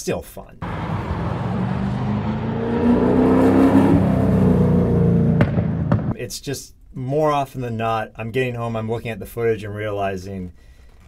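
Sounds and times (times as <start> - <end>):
race car engine under load: 0.6 - 6.2.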